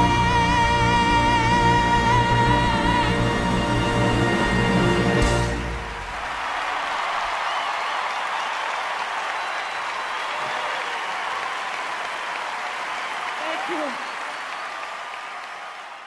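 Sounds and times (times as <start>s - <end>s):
crowd applauding and cheering: 0.0s - 16.0s.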